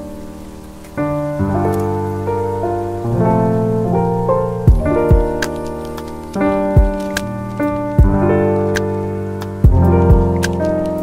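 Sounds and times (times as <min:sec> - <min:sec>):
faint rain-like crackling: 0:00.0 - 0:11.0
soft keyboard chords: 0:00.0 - 0:11.0.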